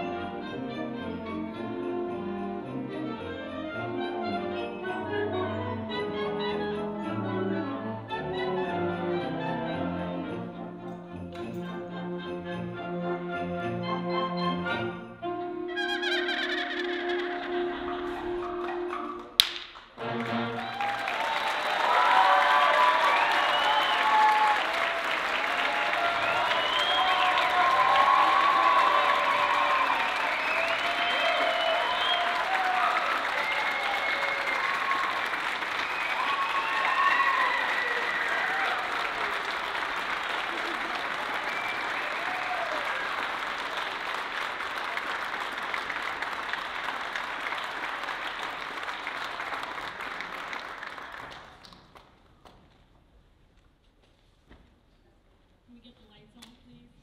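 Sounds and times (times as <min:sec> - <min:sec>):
audience applauding: 0:16.2 - 0:52.6
cheers and whoops: 0:20.6 - 0:43.5.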